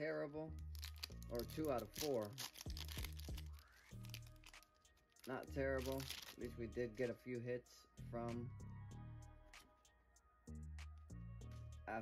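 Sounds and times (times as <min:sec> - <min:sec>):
quiet background music: 0:00.0 - 0:12.0
cards and foil wrapper rustling: 0:00.6 - 0:06.5.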